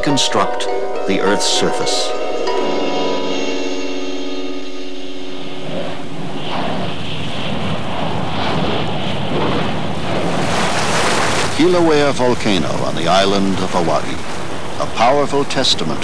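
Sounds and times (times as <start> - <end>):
sustained music chord: 0.0 - 6.4
lava fountain rushing: 6.9 - 16.0.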